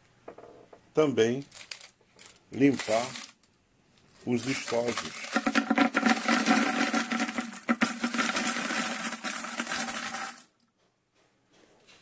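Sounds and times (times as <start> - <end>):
metal cartridge cases clinking: 4.4 - 8.4.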